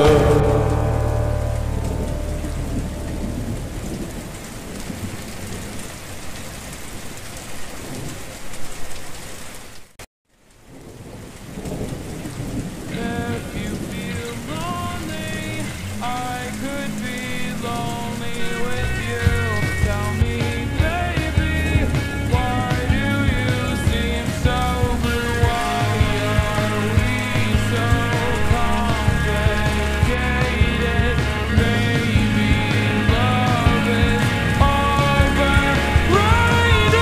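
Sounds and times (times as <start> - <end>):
slowed reverb-heavy song: 0.0 - 5.2, 12.4 - 37.0
steady rain: 0.0 - 37.0.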